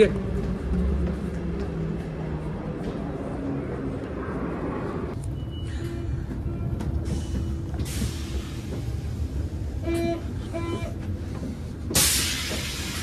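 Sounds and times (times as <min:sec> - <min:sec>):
train rumbling: 0:00.0 - 0:13.0.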